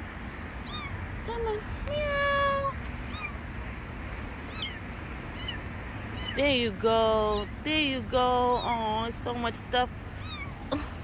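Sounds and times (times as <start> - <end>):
kitten mewing: 0.6 - 3.4, 4.5 - 5.6, 10.2 - 10.7.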